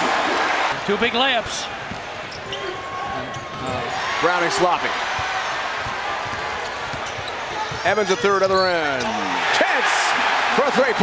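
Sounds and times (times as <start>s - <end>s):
arena crowd noise: 0.0s - 11.0s
basketball bouncing on hardwood: 5.1s - 8.7s.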